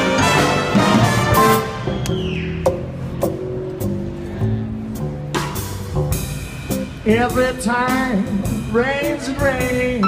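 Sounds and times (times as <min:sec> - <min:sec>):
swing band playing quietly: 0:00.0 - 0:10.0.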